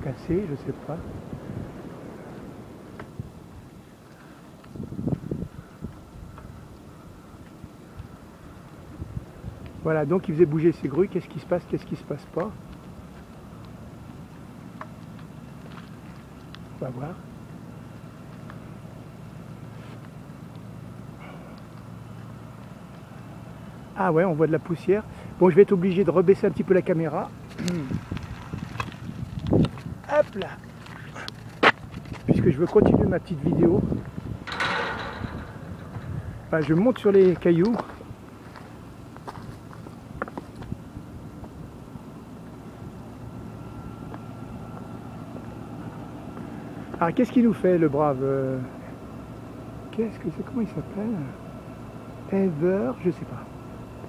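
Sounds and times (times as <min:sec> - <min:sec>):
low outdoor rumble: 0:00.0 - 0:54.0
footsteps on boulders: 0:14.9 - 0:16.6, 0:27.4 - 0:32.8, 0:35.7 - 0:40.8.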